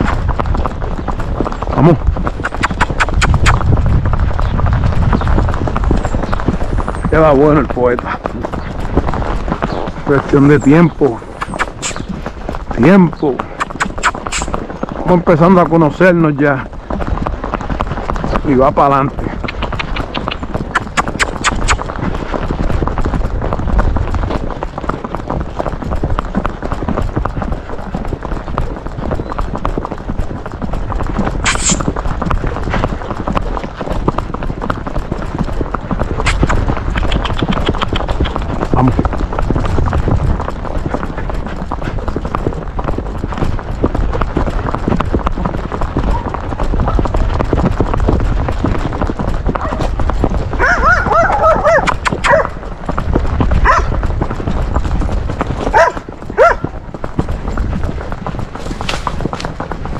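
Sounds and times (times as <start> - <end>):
horse hooves on asphalt: 0.0 - 59.9.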